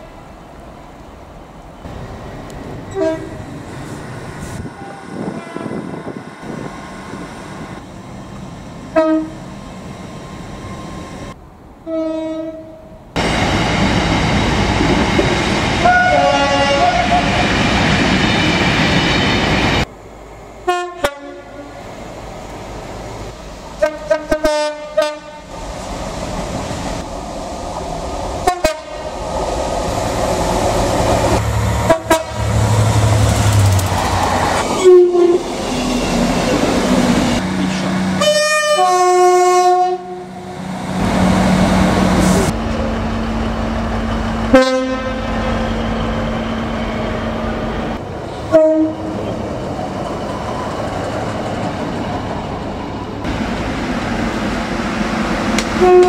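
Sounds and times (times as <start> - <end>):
rumble of passing trains: 0.0 - 56.0
train horn blasts: 2.9 - 3.4, 4.6 - 6.2, 8.9 - 9.4, 11.8 - 12.9, 15.8 - 17.4, 20.7 - 21.7, 23.8 - 25.5, 28.4 - 29.1, 31.8 - 32.6, 34.8 - 35.4, 38.2 - 40.5, 44.5 - 45.6, 48.5 - 49.2, 55.8 - 56.0.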